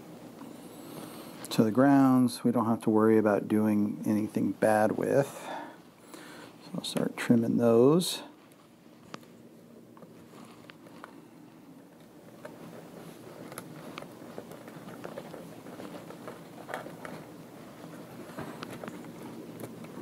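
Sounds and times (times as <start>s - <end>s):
rustling of wire: 6.2s - 20.0s.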